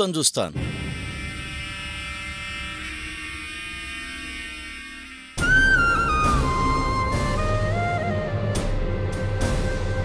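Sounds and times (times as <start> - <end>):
electronic drone chord: 0.6 - 8.0.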